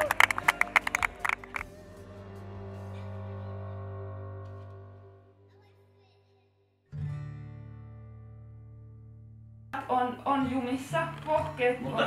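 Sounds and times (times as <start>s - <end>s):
acoustic guitar chords: 6.9s - 12.0s.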